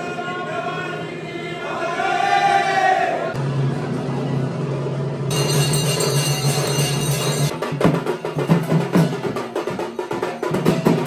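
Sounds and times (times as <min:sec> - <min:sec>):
voices chanting: 0:00.0 - 0:03.4.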